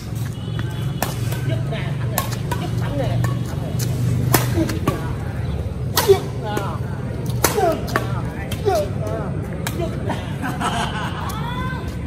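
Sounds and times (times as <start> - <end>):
rackets smacking shuttlecock: 0.0 - 10.1.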